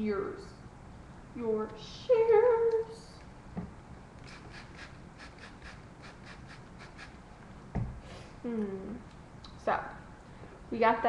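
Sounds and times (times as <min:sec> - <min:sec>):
shears snipping hair: 0:04.2 - 0:07.2
soft knock: 0:07.7 - 0:08.0.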